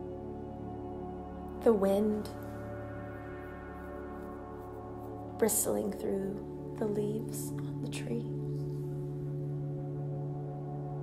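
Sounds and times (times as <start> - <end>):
singing bowl drone: 0.0 - 11.0.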